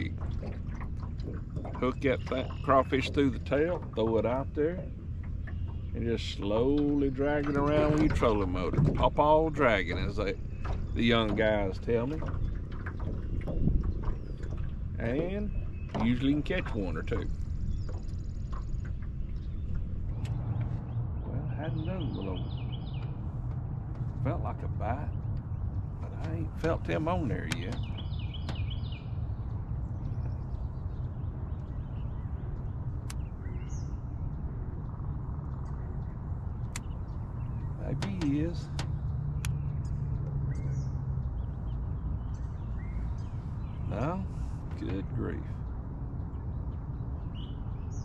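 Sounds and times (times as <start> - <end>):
continuous low rumble: 0.0 - 48.0
faint bird chirps: 1.8 - 12.5, 14.1 - 23.2.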